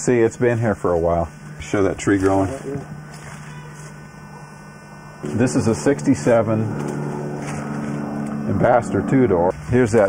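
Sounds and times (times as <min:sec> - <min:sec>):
low hum: 0:04.0 - 0:09.8.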